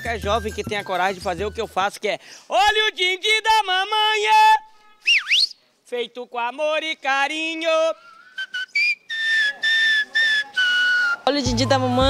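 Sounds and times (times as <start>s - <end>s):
person whistling short notes: 5.0s - 5.6s, 8.0s - 11.3s.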